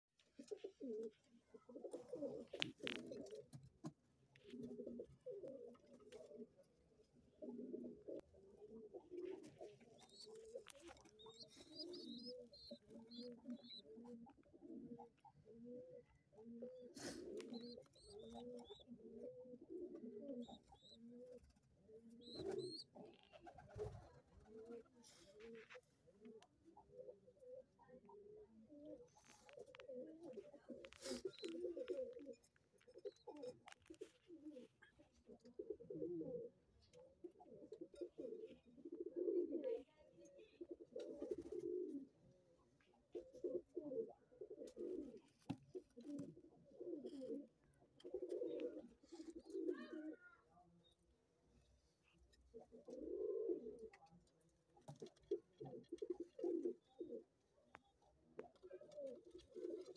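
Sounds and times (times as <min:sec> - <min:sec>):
pigeons cooing: 0:00.4 - 0:03.6, 0:04.4 - 0:06.7, 0:07.3 - 0:39.8, 0:40.4 - 0:42.3, 0:43.0 - 0:50.3, 0:52.3 - 0:54.1, 0:54.8 - 0:57.8, 0:58.4 - 0:59.9.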